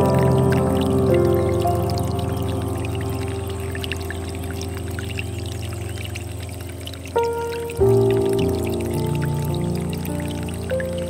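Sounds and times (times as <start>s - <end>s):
slow ambient music: 0.0s - 11.0s
water trickling into stone basin: 0.0s - 11.0s.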